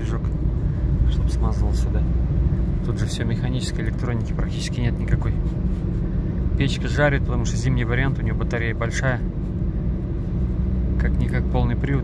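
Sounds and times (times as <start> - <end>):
diesel engine drone: 0.0 - 12.0
road noise: 0.0 - 12.0.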